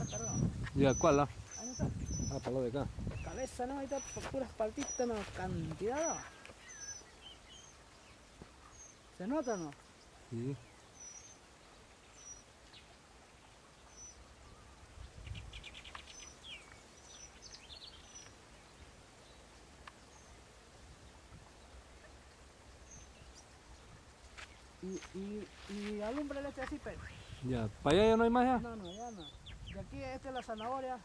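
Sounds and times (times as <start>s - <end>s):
songbird chirps and trills: 0.0s - 31.0s.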